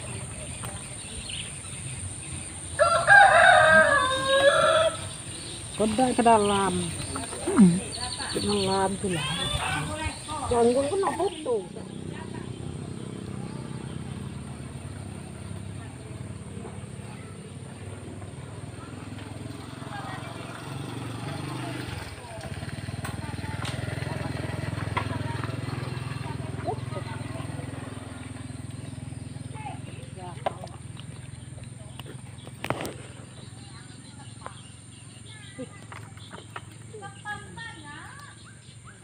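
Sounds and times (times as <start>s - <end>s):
quiet voices: 0.0s - 38.8s
outdoor ambience: 0.0s - 39.0s.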